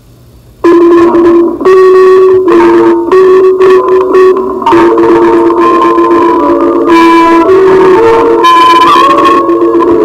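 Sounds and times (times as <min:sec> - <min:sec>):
loud instrumental music: 0:00.7 - 0:10.0.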